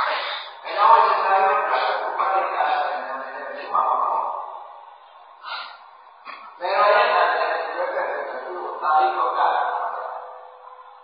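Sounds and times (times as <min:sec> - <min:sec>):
breath intake: 0:00.0 - 0:00.6, 0:05.2 - 0:06.6
man speaking: 0:00.0 - 0:04.9, 0:05.5 - 0:10.4.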